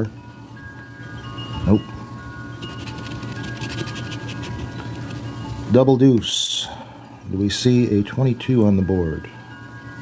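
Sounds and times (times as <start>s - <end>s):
chime-like tones ringing: 0.0s - 6.1s, 6.7s - 10.0s
lottery ticket being scratched: 2.6s - 5.4s.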